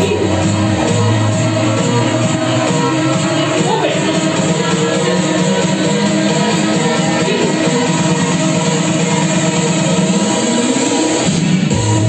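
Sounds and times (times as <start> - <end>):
deep bass part: 0.0 - 10.0
loud dance music: 0.0 - 12.0.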